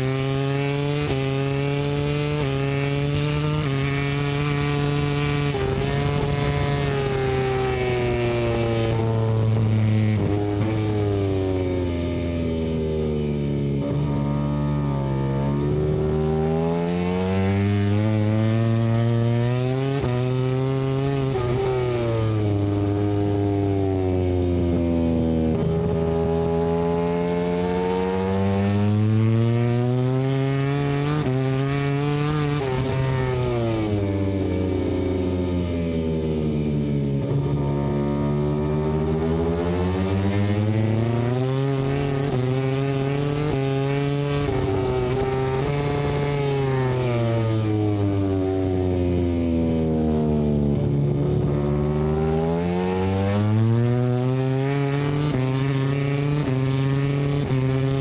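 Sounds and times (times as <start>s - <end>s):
racing motorcycle engine: 0.0s - 58.0s.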